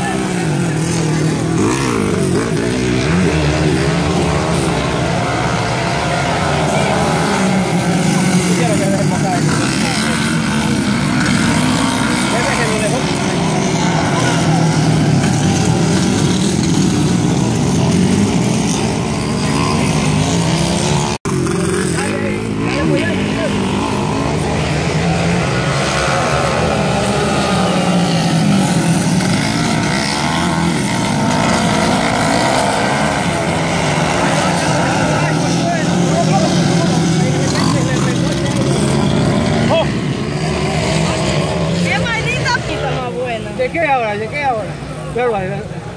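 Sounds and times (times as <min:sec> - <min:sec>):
dirt bike engines revving: 0:00.0 - 0:45.9.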